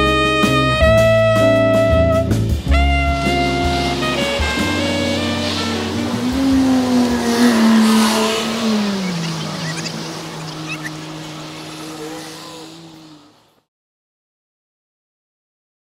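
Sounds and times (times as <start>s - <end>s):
jazz combo music: 0.0s - 7.8s.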